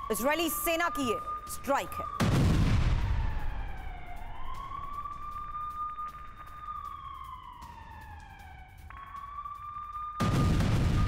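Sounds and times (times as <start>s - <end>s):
wailing siren: 0.0s - 11.0s.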